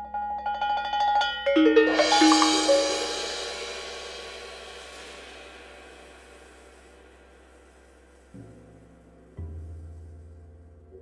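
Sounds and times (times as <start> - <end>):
mallet tremolo on pitched percussion: 1.5 - 7.2
lower ringing notes: 1.6 - 7.8
cymbal crash: 1.6 - 8.9.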